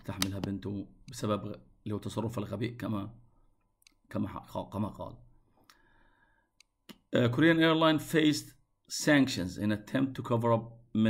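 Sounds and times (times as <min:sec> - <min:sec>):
man lecturing: 0:00.0 - 0:03.2, 0:04.1 - 0:05.2, 0:06.9 - 0:11.0.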